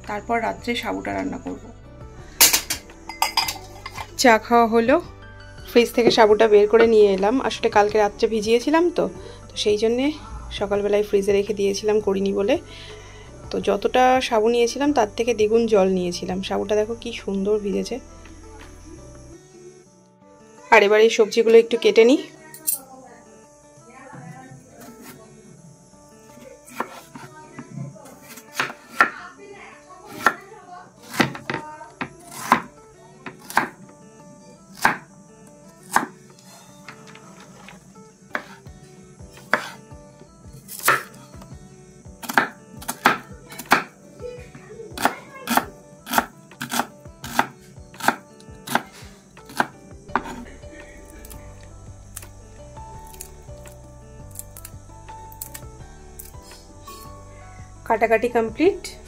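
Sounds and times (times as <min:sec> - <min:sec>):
knife chopping on wooden board: 0:26.7 - 0:27.3, 0:28.2 - 0:29.2, 0:30.1 - 0:30.4, 0:31.0 - 0:33.8, 0:34.7 - 0:35.0, 0:35.9 - 0:36.2, 0:38.3 - 0:38.6, 0:39.4 - 0:39.8, 0:40.7 - 0:41.2, 0:42.2 - 0:43.9, 0:45.0 - 0:50.4.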